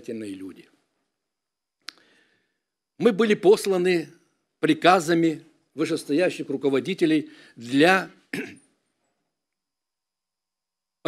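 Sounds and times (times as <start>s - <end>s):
man speaking: 0.0s - 0.8s, 3.0s - 8.6s
throat clearing: 8.3s - 8.7s.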